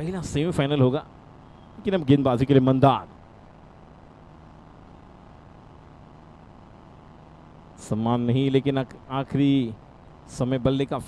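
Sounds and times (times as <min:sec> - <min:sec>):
faint low hum and hiss: 0:00.0 - 0:11.0.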